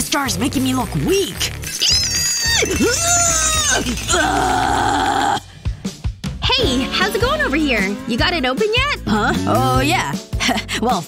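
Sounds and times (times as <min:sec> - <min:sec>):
gritted-teeth straining: 0:01.4 - 0:05.6
background music with steady beat: 0:02.8 - 0:11.0
man groaning with effort: 0:04.0 - 0:05.5, 0:09.4 - 0:09.8.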